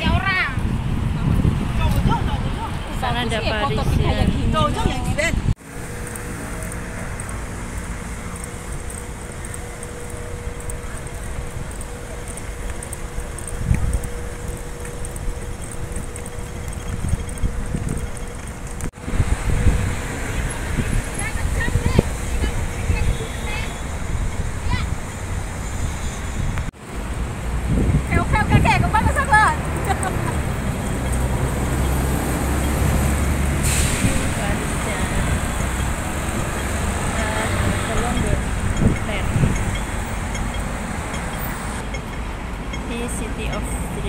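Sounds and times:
bus engine rumbling: 0.0 - 44.0
street ambience: 0.0 - 44.0
wind buffeting microphone: 0.0 - 44.0
short hiss of air: 33.6 - 34.3.

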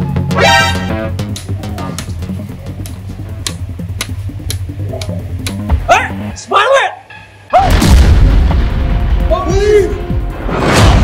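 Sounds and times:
background music with bass and drums: 0.0 - 6.5, 7.3 - 11.0.

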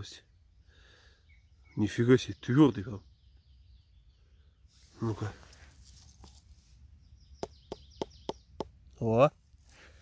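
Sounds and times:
finger tapping on mushroom: 7.4 - 8.8.

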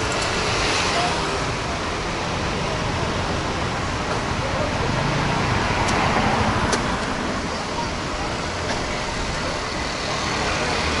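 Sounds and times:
car approaching: 0.0 - 11.0
passing vehicles rumble: 0.0 - 11.0.

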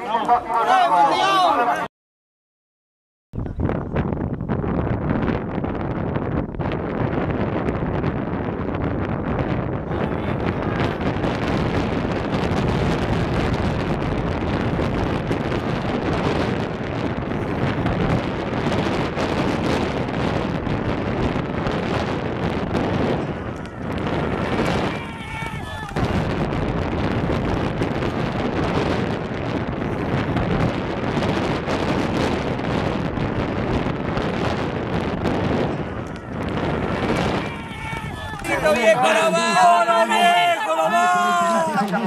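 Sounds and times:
wind buffeting microphone: 3.4 - 42.0.

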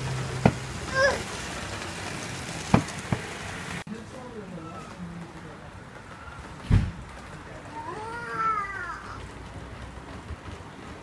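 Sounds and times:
model train rushing hiss: 0.0 - 3.8.

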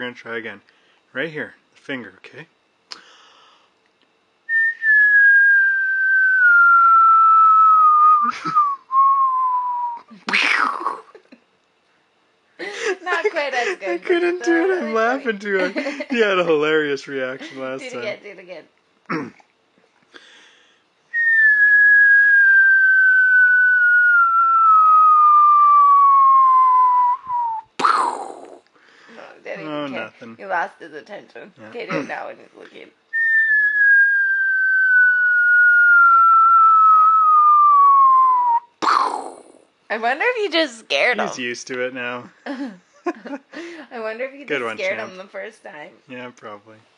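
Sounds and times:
person whistling falling tone: 4.5 - 10.1, 21.1 - 27.8, 33.2 - 38.8.

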